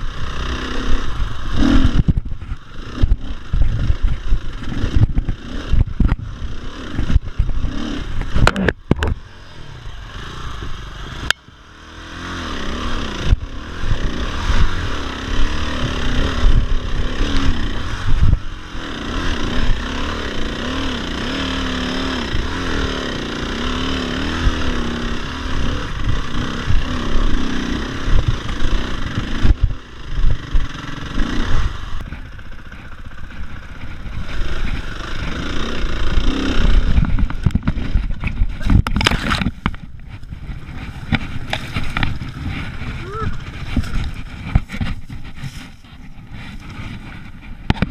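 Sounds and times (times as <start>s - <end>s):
dirt bike engine revving: 0.0s - 47.9s
bike knocks and clatter: 36.4s - 42.8s, 43.4s - 47.9s.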